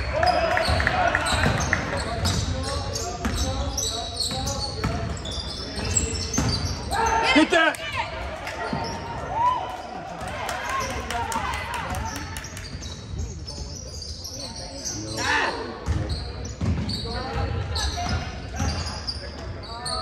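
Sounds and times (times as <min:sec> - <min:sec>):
basketball bouncing on court: 0:00.6 - 0:06.8, 0:15.8 - 0:18.9.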